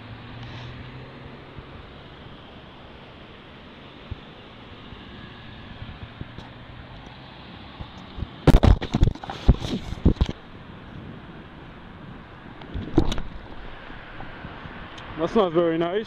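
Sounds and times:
passing traffic: 0.0s - 16.0s.

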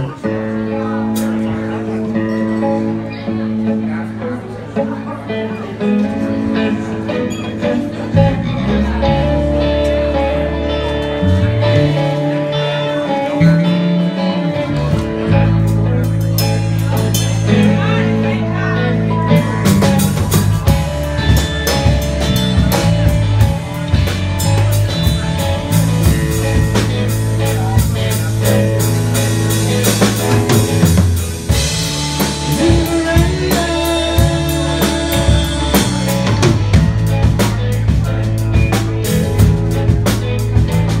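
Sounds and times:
drum kit: 0.0s - 2.7s, 6.0s - 41.0s
bass guitar: 0.0s - 41.0s
electric guitar: 0.0s - 41.0s.

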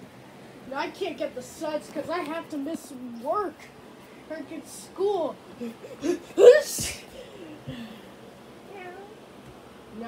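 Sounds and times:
cat meowing faintly: 8.7s - 9.2s.

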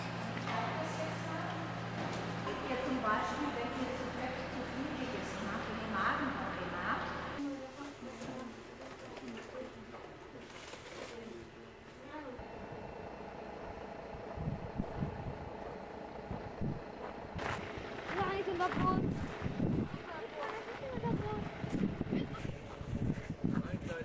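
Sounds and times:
indistinct voices talking: 17.8s - 24.0s.

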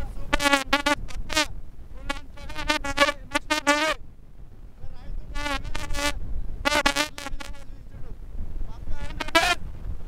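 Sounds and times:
buzzy horn tooting: 0.3s - 4.0s, 5.3s - 7.7s, 9.0s - 9.6s.

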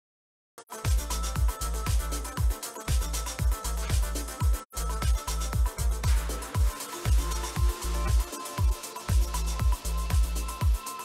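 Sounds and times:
melodic house music: 0.6s - 11.0s.

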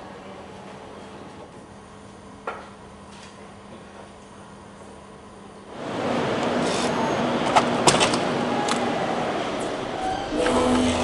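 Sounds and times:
door opening: 9.6s - 11.0s.

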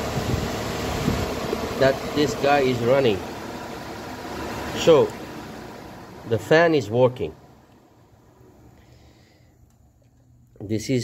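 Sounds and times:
radiator cooling fan humming: 0.0s - 11.0s.

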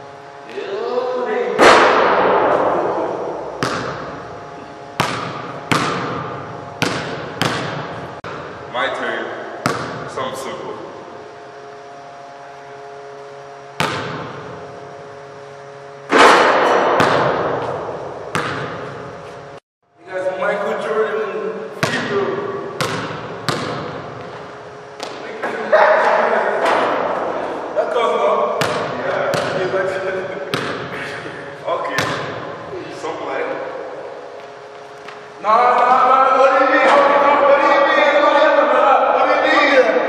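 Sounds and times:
basketball bouncing on hardwood floor: 3.6s - 4.1s, 5.0s - 8.4s, 9.6s - 10.0s, 13.8s - 14.3s, 16.7s - 18.9s, 22.8s - 24.4s, 28.6s - 29.6s, 32.0s - 32.4s.

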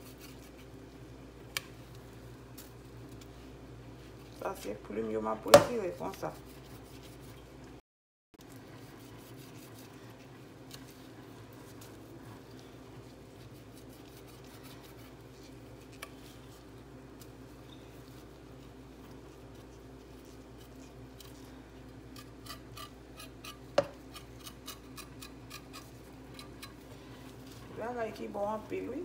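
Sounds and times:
knife scraping raw meat: 0.0s - 0.9s, 5.8s - 7.4s, 8.7s - 27.8s.

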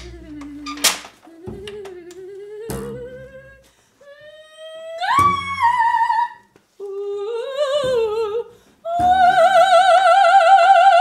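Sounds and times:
woman singing wordlessly: 0.0s - 11.0s.

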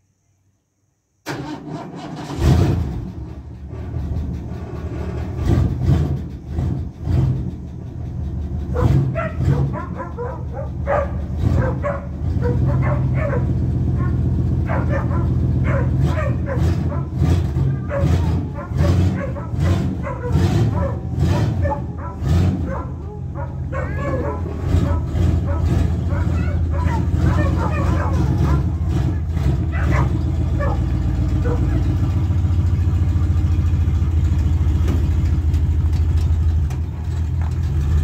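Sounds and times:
pickup engine idling: 2.9s - 38.0s
dog barking in sharp yips: 8.8s - 28.7s, 29.7s - 30.8s, 31.4s - 31.9s.

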